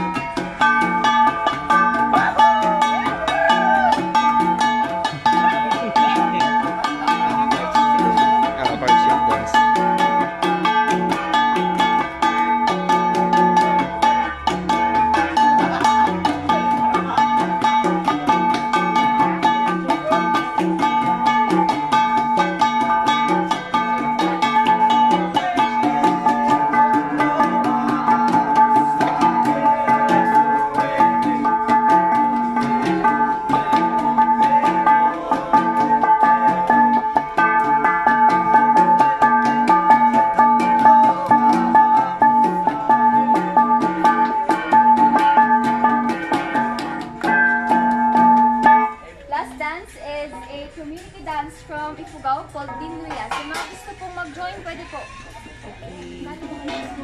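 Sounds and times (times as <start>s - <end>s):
bronze gongs ringing: 0.0s - 49.2s
hand drums: 0.0s - 57.0s.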